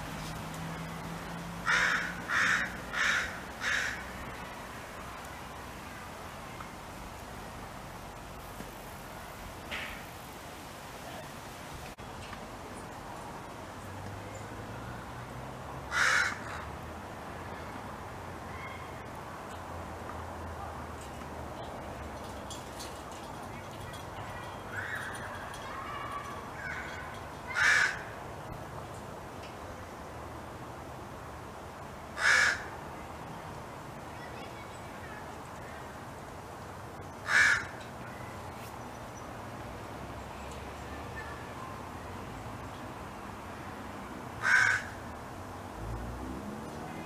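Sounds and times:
crows cawing: 0:01.6 - 0:04.1, 0:15.9 - 0:16.7, 0:26.1 - 0:28.2, 0:32.2 - 0:32.7, 0:37.2 - 0:37.8, 0:44.4 - 0:45.0.

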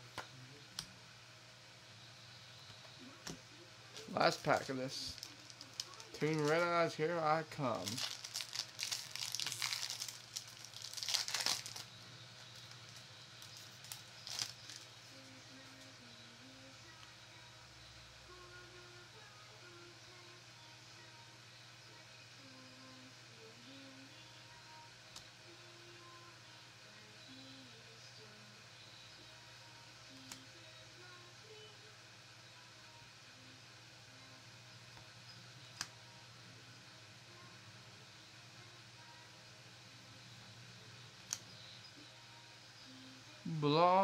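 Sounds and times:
foil pack tearing and crinkling: 0:04.2 - 0:06.7, 0:07.8 - 0:11.9, 0:12.6 - 0:14.9.

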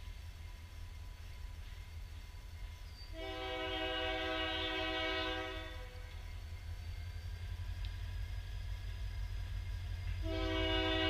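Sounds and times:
locomotive air horn blast: 0:03.2 - 0:06.0, 0:10.2 - 0:11.0
steady low rumble: 0:05.5 - 0:11.0.

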